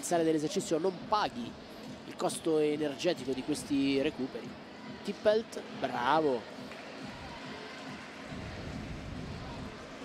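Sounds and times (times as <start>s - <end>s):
sports hall background noise: 0.0s - 10.0s.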